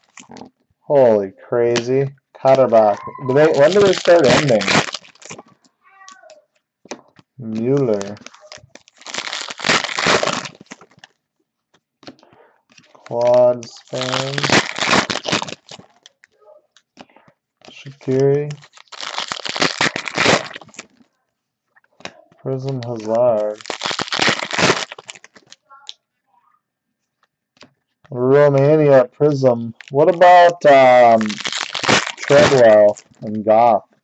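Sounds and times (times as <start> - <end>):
wrappers crinkling: 0.0 - 0.6, 2.4 - 11.4, 12.0 - 21.2, 21.8 - 26.0, 29.4 - 34.0
cards rustling: 1.7 - 21.2, 21.8 - 26.0, 29.5 - 34.0
man murmuring: 2.6 - 4.7.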